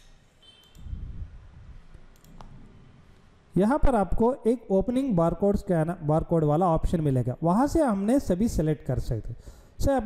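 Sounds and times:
small sharp computer clicks: 0:00.4 - 0:00.9.

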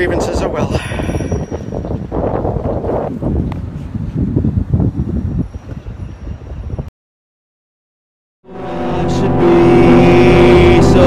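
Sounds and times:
wind buffeting microphone: 0:00.0 - 0:06.9.

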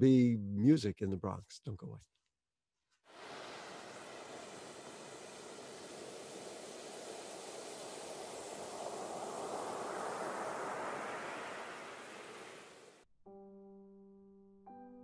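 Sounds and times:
waterfall rushing: 0:03.1 - 0:13.0.

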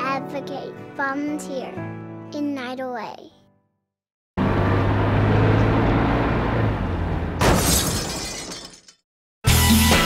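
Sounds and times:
car crash impact: 0:07.4 - 0:08.9
glass shattering: 0:07.4 - 0:09.0.

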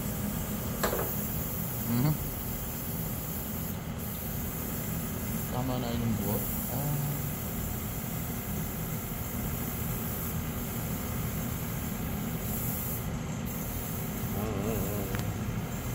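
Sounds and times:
machine hum with hiss: 0:00.0 - 0:15.9
person speaking: 0:05.5 - 0:07.3, 0:14.3 - 0:15.4.

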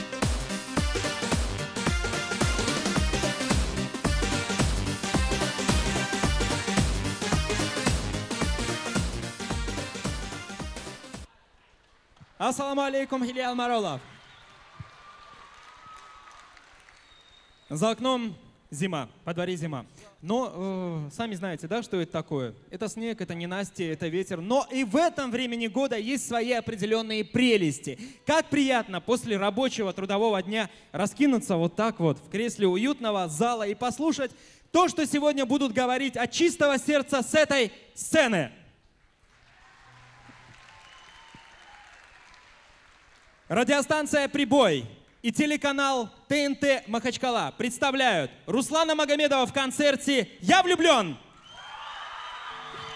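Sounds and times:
audience applause: 0:14.0 - 0:17.7, 0:39.2 - 0:43.5, 0:51.4 - 0:52.9.

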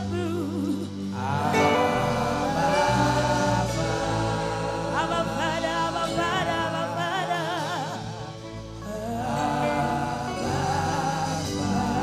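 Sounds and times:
electric bass guitar and band: 0:00.0 - 0:12.0
voices singing: 0:00.0 - 0:12.0
woman singing: 0:00.0 - 0:12.0.

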